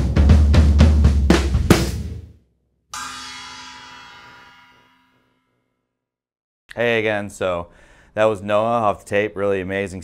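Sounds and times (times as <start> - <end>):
drum kit hit: 0.0 - 2.3, 3.0 - 5.1
hanging gong ringing: 3.0 - 5.5
cymbals ringing: 3.0 - 5.6.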